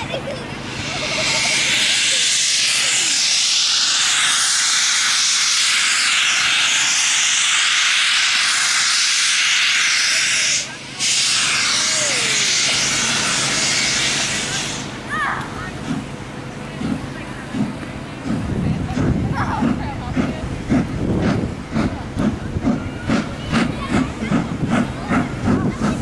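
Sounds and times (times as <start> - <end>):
steam locomotive hissing steam: 0.0 - 26.0.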